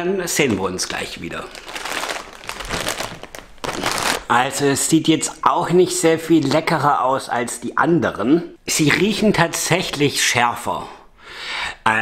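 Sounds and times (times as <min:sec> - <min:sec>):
plastic packet crinkling: 0:00.5 - 0:04.3.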